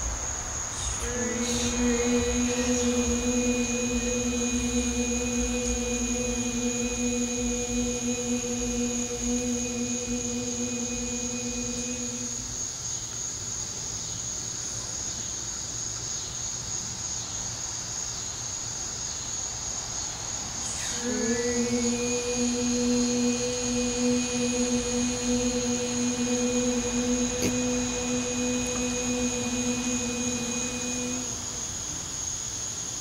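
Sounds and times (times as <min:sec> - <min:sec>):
high insect trill: 0:00.0 - 0:14.3, 0:18.1 - 0:33.0
woman holding a long note: 0:00.8 - 0:12.6, 0:20.7 - 0:32.2.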